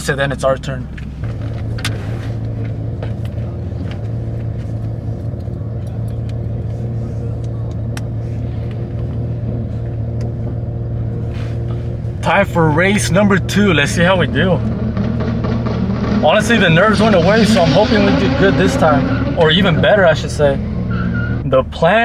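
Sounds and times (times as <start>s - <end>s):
car engine idling: 0.0s - 22.0s.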